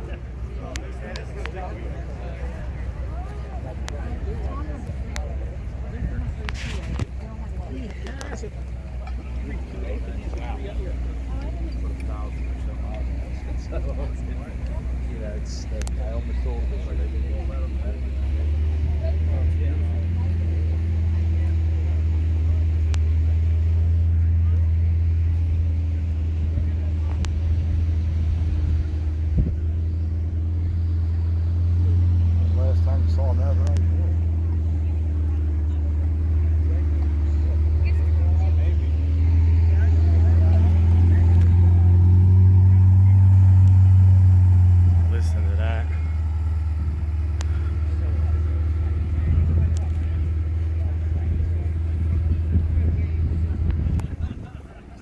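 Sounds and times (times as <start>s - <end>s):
car engine idling: 0.0s - 55.0s
faint voices talking: 0.0s - 55.0s.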